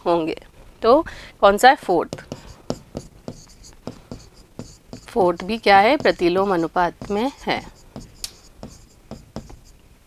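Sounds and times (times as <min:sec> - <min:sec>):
marker pen writing on board: 0:02.1 - 0:09.8.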